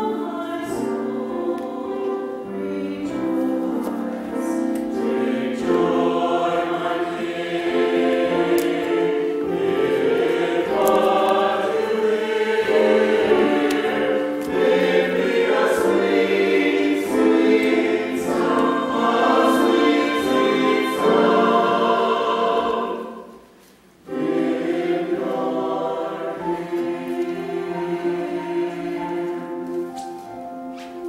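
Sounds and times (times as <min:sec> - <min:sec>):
mixed choir singing: 0:00.0 - 0:29.9.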